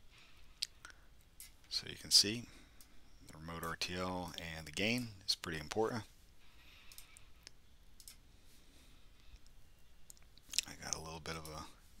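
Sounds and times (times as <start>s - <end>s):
soft clicks: 6.9s - 8.2s, 9.2s - 11.6s.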